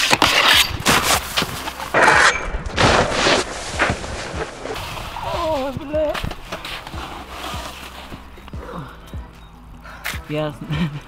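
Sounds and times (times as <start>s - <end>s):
snowboard scraping on metal rail: 0.0s - 8.2s.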